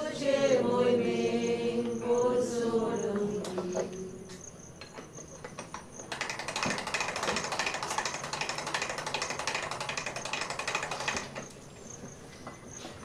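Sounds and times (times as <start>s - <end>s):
casket-lowering device ratcheting: 4.8s - 11.6s.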